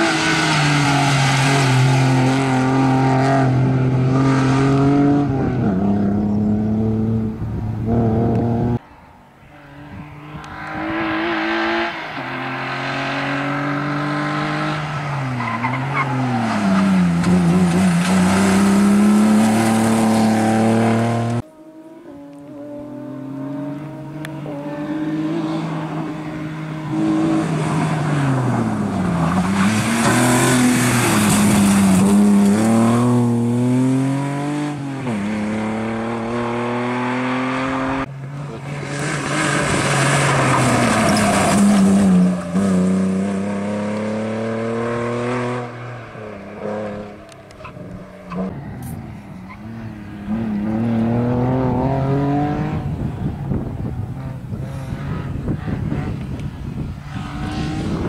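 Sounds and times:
car engine revving: 0:00.0 - 0:08.8, 0:09.5 - 0:58.0.

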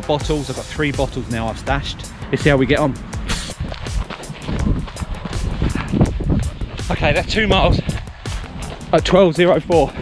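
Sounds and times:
wind buffeting microphone: 0:00.9 - 0:10.0.

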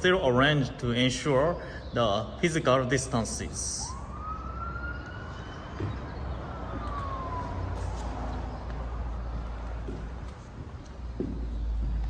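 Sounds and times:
siren wailing: 0:03.2 - 0:09.6.

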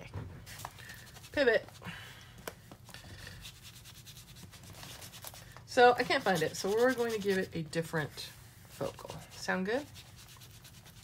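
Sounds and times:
brush scrubbing on paper: 0:03.4 - 0:11.0.

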